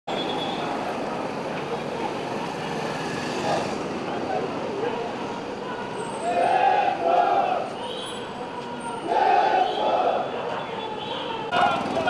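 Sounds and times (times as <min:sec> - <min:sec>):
street traffic: 0:00.1 - 0:12.0
indistinct crowd voices: 0:00.4 - 0:12.0.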